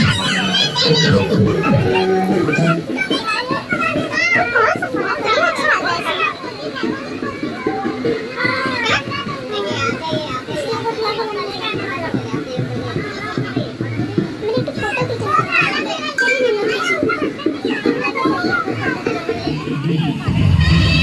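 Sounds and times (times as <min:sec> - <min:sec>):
children and adults chattering: 0:00.0 - 0:21.0.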